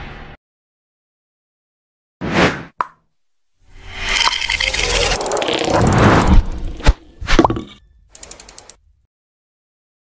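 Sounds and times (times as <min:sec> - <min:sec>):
rising sound effect: 0:03.7 - 0:07.4
transition noise burst: 0:03.7 - 0:07.4.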